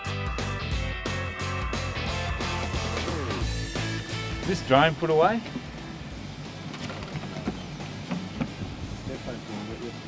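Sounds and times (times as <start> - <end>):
music with drum-kit beat: 0.0 - 10.0.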